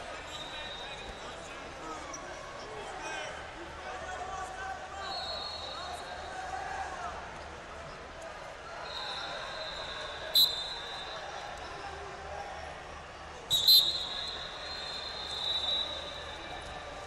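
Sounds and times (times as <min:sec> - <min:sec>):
faint steady high whistle tone: 0:00.1 - 0:01.4, 0:05.0 - 0:06.3, 0:08.8 - 0:11.5, 0:13.5 - 0:17.0
sharp whistle blasts: 0:00.3 - 0:01.2, 0:05.0 - 0:06.0, 0:08.8 - 0:11.4, 0:13.5 - 0:16.6.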